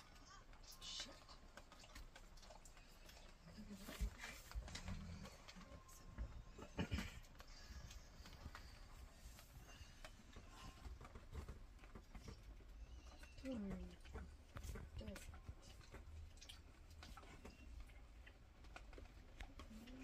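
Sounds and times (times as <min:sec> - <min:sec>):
dogs grunting and snuffling: 0:00.0 - 0:20.0.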